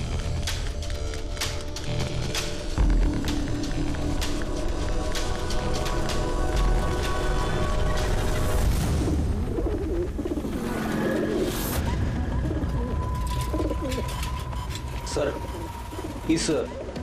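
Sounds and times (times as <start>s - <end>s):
pigeons cooing: 9.4s - 17.0s.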